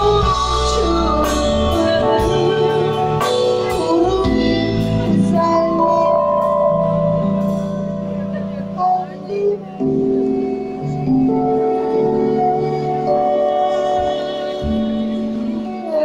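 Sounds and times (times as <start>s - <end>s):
live pop band with singers: 0.0s - 16.0s.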